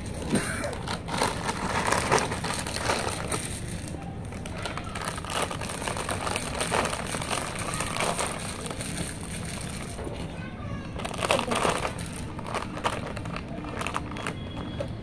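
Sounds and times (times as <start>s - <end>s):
chewing potato chips: 0.1s - 10.0s, 11.1s - 14.8s.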